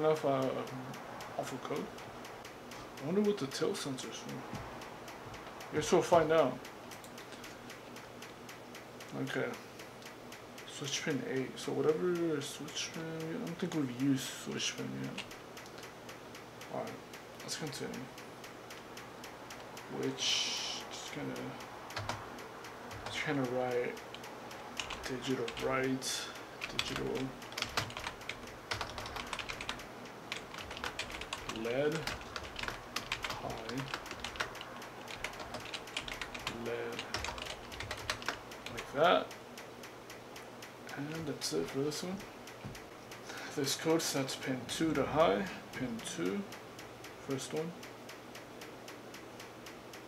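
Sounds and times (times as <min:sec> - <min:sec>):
faint rapid ticking: 0:00.0 - 0:50.0
typing on computer keyboard: 0:19.6 - 0:39.3.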